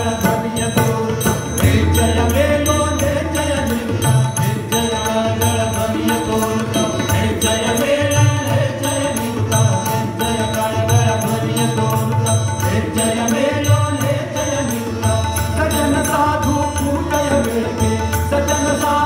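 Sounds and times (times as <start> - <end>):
devotional chant singing: 0.0 - 19.0
harmonium: 0.0 - 19.0
tanpura drone: 0.0 - 19.0
hand drum beat: 0.7 - 4.6.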